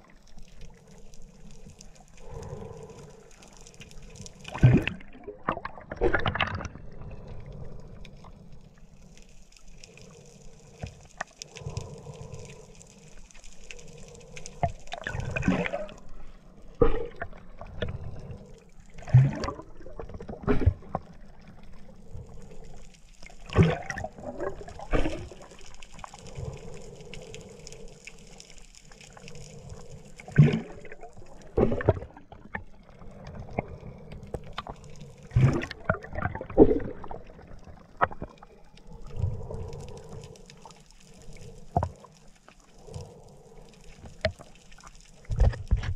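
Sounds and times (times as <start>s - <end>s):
muffled underwater wash: 0.0s - 45.9s
faint clicks: 0.1s - 4.6s, 7.2s - 19.1s, 20.9s - 31.5s, 37.4s - 45.9s
air bubbles gushing: 4.0s - 7.3s, 14.5s - 16.1s, 16.8s - 21.8s, 23.2s - 26.8s, 29.1s - 40.3s.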